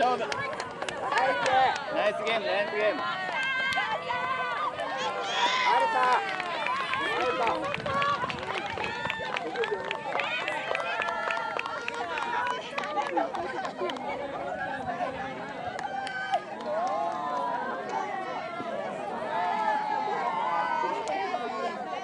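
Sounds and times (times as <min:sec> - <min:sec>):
children talking and calling out: 0:02.9 - 0:06.1.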